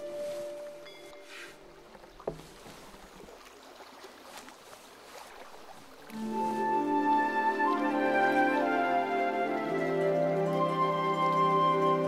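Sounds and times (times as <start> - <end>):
water lapping: 0.0 - 12.0
wooden boat deck creaking: 1.0 - 3.3.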